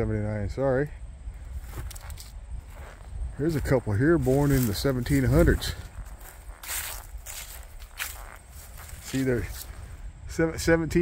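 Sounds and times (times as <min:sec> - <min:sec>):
footsteps through dry leaves: 0:01.5 - 0:10.0.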